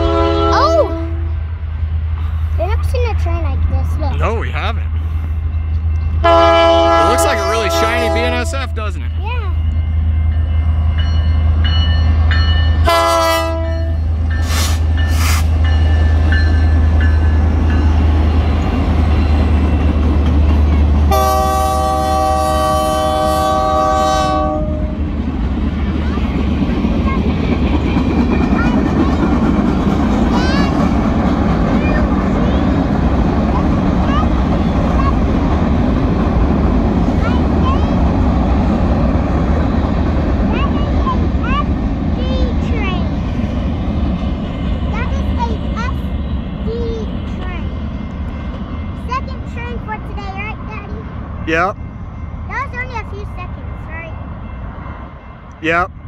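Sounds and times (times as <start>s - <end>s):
train air horn: 0.0s - 1.3s, 6.2s - 8.5s, 12.8s - 15.5s, 21.1s - 25.0s
diesel locomotive engines rumbling: 0.0s - 56.0s
freight cars rumbling clatter: 25.0s - 51.8s.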